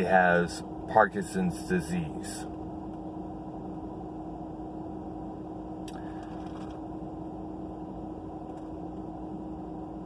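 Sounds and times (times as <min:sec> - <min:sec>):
car cabin engine hum: 0:00.0 - 0:10.0.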